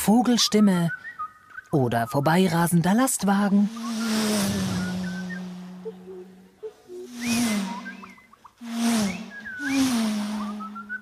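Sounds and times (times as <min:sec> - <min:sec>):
low hummed drone: 0:03.6 - 0:11.0
breathy mouth whooshes: 0:03.8 - 0:06.0, 0:07.1 - 0:11.0
short whistled chirps: 0:03.8 - 0:06.0, 0:06.9 - 0:11.0.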